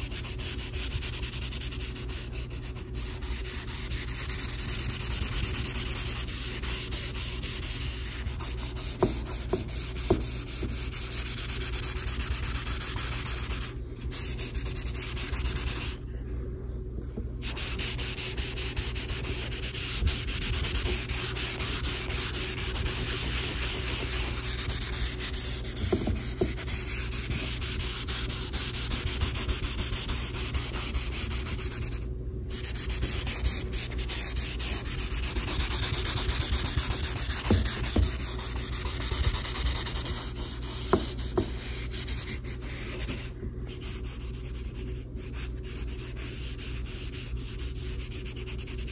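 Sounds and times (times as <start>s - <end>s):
pencil scratching on paper: 0.0s - 16.0s, 17.4s - 48.9s.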